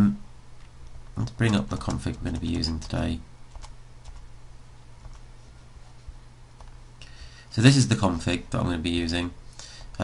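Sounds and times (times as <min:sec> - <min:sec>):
low steady hum: 0:00.0 - 0:10.0
person speaking: 0:01.1 - 0:03.4, 0:07.5 - 0:10.0
computer keyboard clicks: 0:01.2 - 0:04.2.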